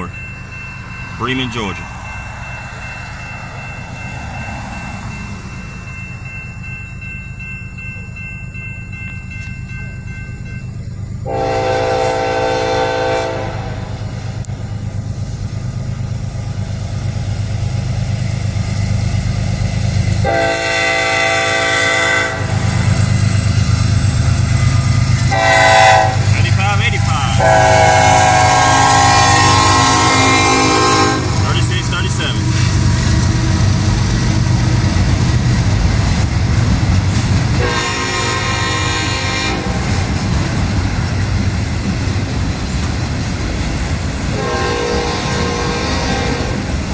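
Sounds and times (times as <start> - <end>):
crossing bell ringing: 0.0 - 13.4, 18.0 - 35.8
diesel locomotive rumble: 0.0 - 46.9
locomotive air horn blasts: 11.2 - 13.9, 20.2 - 22.6, 25.3 - 31.5, 37.6 - 40.0, 44.3 - 46.6.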